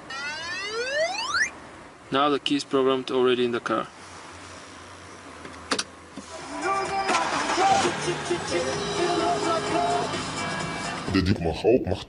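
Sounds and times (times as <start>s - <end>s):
background music: 6.3s - 11.2s.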